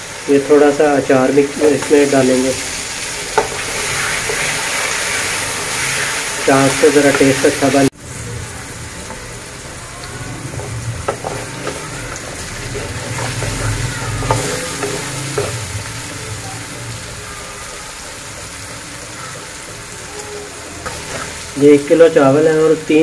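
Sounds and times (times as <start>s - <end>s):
vegetables sizzling in oil: 0.0s - 23.0s
wooden spoon stirring: 1.7s - 7.5s, 10.3s - 15.8s, 20.8s - 21.9s.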